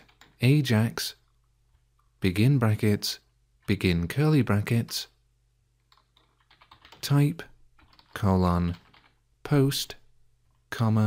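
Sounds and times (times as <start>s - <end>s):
faint keyboard typing: 0.0s - 0.6s, 5.8s - 9.2s.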